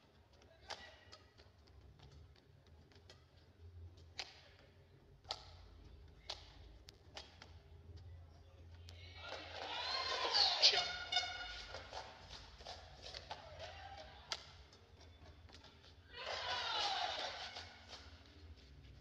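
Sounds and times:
rackets hitting shuttlecock: 0.4s - 2.3s, 4.0s - 7.6s, 9.2s - 18.4s
crowd shouting and cheering: 9.2s - 11.8s, 16.1s - 18.1s.

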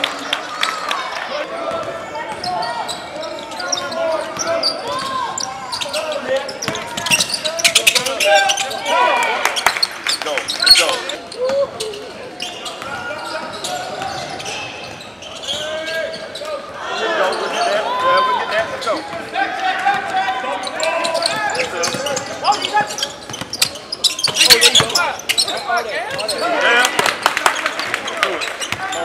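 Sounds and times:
players' voices: 0.0s - 29.0s
sneaker squeaks: 1.7s - 19.2s, 19.9s - 26.7s, 27.6s - 29.0s.

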